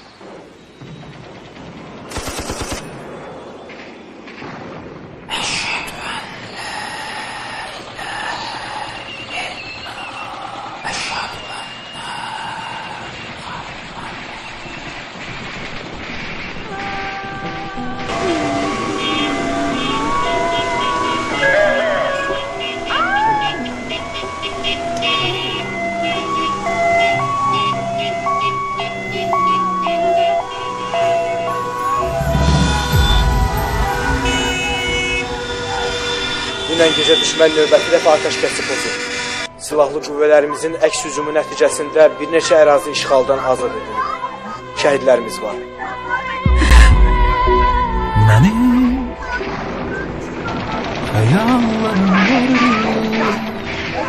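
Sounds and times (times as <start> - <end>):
two-tone siren: 18.0 - 39.5
car horns blasting: 18.1 - 37.9
loud low rumble: 31.8 - 36.6, 46.5 - 49.9.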